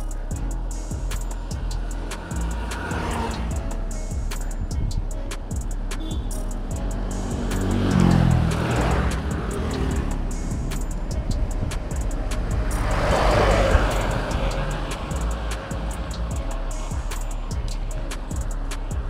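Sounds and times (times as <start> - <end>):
background music with steady beat: 0.0 - 19.0
vehicles passing on road: 0.0 - 19.0.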